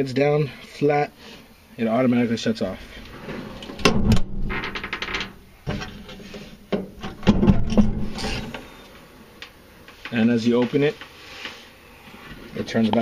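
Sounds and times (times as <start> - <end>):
toolbox lid scraping: 5.7 - 8.6.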